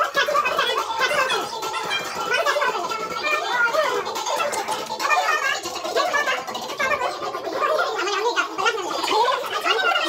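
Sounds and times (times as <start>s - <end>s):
voices talking over each other: 0.0s - 10.0s.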